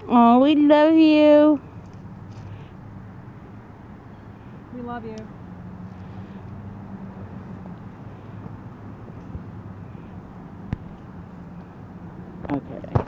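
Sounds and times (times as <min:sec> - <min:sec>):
distant road traffic hum: 0:00.0 - 0:13.0.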